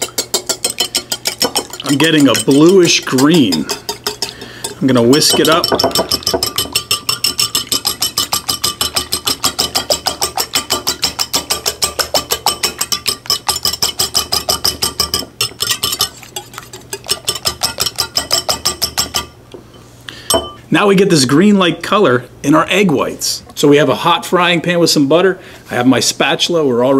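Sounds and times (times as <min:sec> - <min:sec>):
whisk clinking against bowl: 0:00.0 - 0:19.4.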